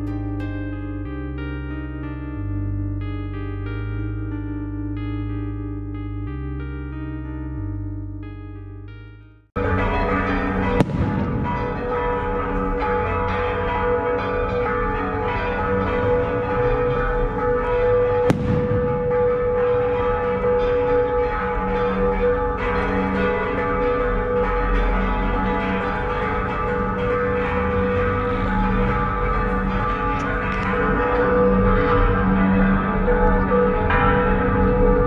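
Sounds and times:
church bells ringing: 9.6s - 35.0s.

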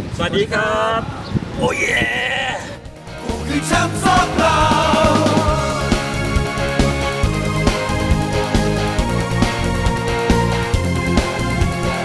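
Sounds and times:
person exclaiming oh: 1.6s - 2.8s.

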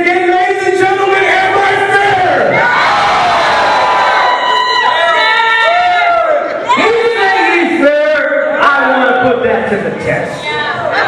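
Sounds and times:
crowd chanting and yelling: 0.0s - 11.0s.

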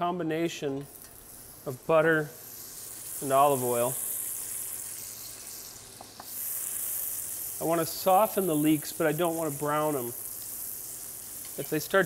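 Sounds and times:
leeks sizzling in pan: 0.9s - 12.0s.

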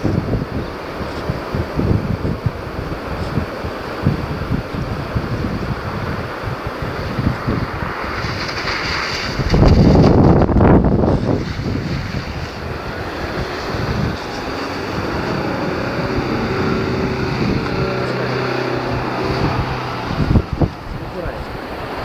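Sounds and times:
car driving through water: 0.0s - 22.0s
car engine hum: 0.0s - 22.0s
surf: 0.0s - 22.0s
wind buffeting microphone: 0.0s - 22.0s.

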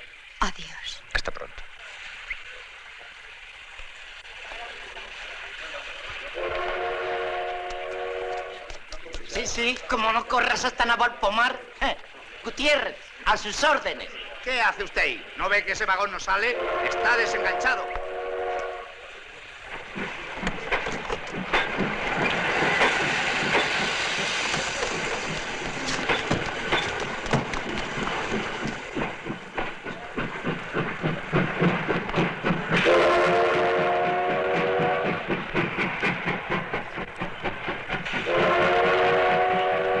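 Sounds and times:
steam train chuffing: 4.2s - 40.0s
steam train chord whistle: 6.4s - 8.7s, 16.6s - 19.0s, 32.8s - 35.3s, 38.2s - 40.0s.

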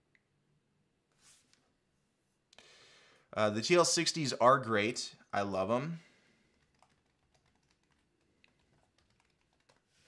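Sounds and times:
computer keys clicking: 6.5s - 9.9s.

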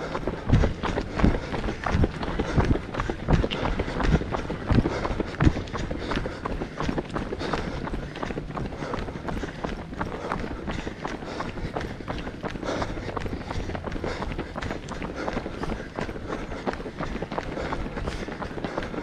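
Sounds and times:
running footsteps on gravel: 0.0s - 19.0s.

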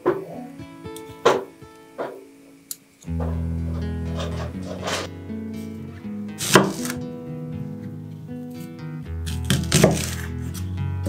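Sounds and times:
knife cutting onion on board: 6.4s - 7.0s, 9.3s - 10.7s.

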